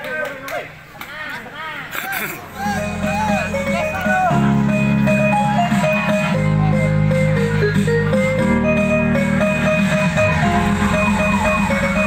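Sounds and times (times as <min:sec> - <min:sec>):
people calling and shouting: 0:00.0 - 0:08.3, 0:09.6 - 0:12.0.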